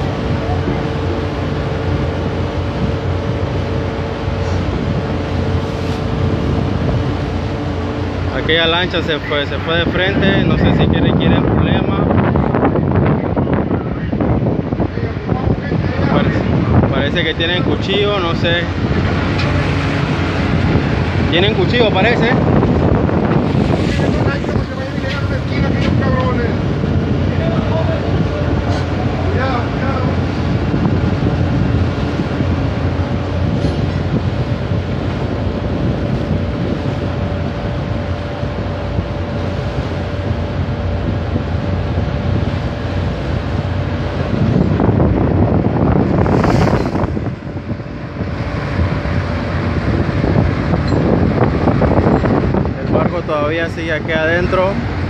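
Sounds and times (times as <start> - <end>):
boat engine rumble: 0.0 - 55.0
wind buffeting microphone: 0.0 - 55.0.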